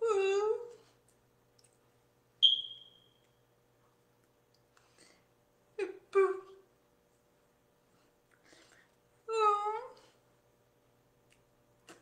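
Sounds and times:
faint steady hum: 0.0 - 12.0
high-pitched beep: 2.4 - 3.1.

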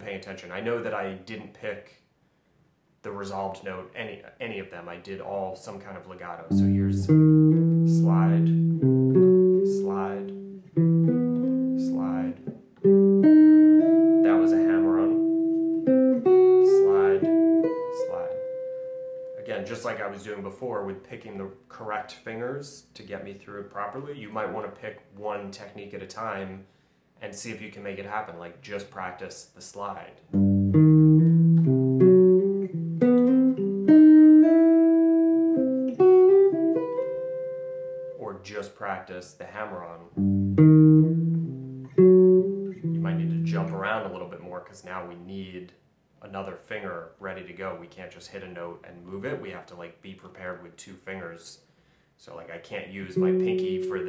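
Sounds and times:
electric guitar legato slides: 6.5 - 19.5, 30.4 - 38.2, 40.2 - 43.9, 53.0 - 54.0.

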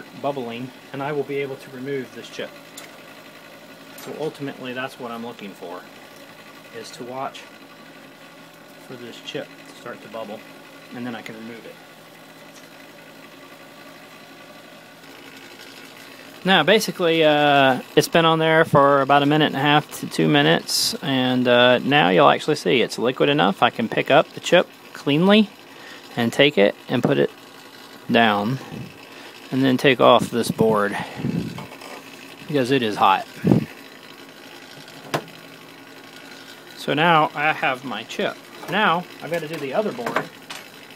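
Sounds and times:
hot-air blower running: 0.0 - 40.9.

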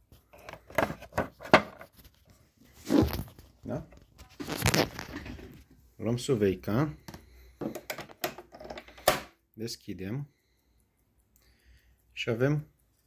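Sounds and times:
rustling handling noise: 0.0 - 6.5.

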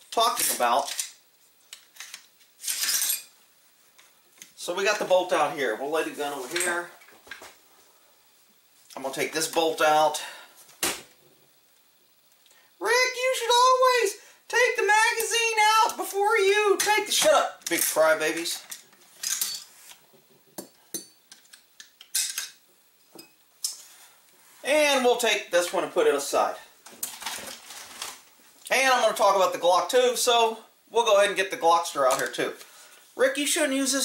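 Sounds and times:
person speaking: 0.0 - 1.1, 4.5 - 7.0, 8.9 - 10.5, 12.8 - 18.7, 24.6 - 26.8, 28.6 - 34.0
scraping rustling noises: 27.1 - 28.2.

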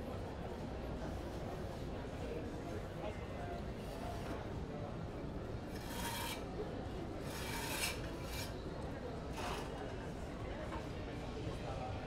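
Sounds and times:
short rasping scrapes: 5.7 - 6.5, 7.2 - 8.6.

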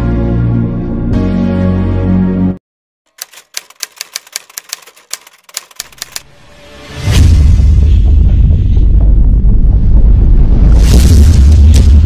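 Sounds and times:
typewriter key clacks: 3.1 - 6.2
low rumble: 7.2 - 12.0.

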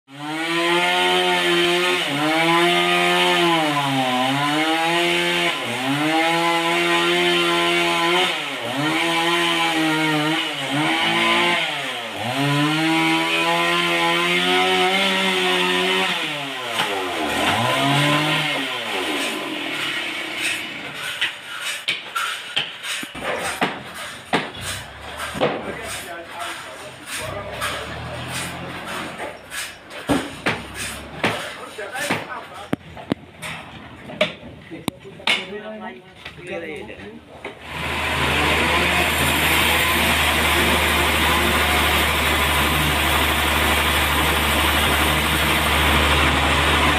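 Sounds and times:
chainsaw cutting log: 0.1 - 32.4, 37.5 - 46.9
sharp knocks of wood: 21.8 - 25.7, 30.1 - 32.4.

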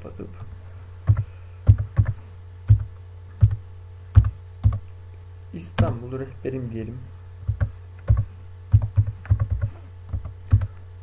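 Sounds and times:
computer keyboard typing: 1.0 - 3.6, 4.2 - 4.8, 5.8 - 6.0, 7.5 - 10.7.

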